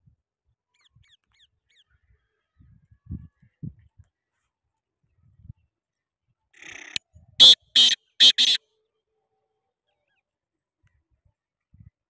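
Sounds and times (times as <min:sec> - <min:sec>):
high downward-sliding bird chirps: 0:07.4 - 0:08.6.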